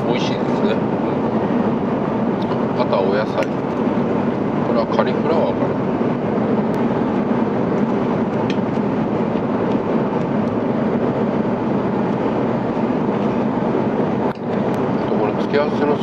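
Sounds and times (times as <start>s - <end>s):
airliner cabin noise: 0.0s - 16.0s.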